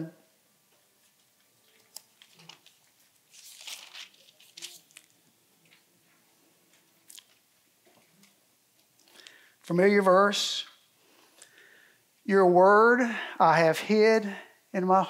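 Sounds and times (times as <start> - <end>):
book pages rustling: 1.0 - 7.4.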